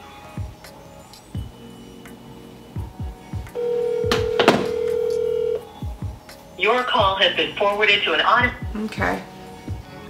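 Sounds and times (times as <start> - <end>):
low thumps: 2.8 - 5.2
telephone ringback tone: 3.6 - 5.7.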